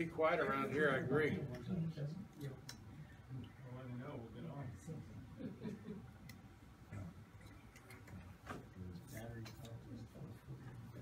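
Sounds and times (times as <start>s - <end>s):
faint low room murmur: 0.0s - 11.0s.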